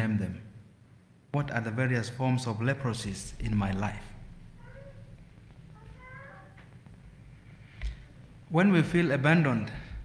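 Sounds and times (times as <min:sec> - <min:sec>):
low room hum: 0:00.0 - 0:10.0
faint high-pitched vocal call: 0:04.6 - 0:05.1, 0:05.8 - 0:06.6.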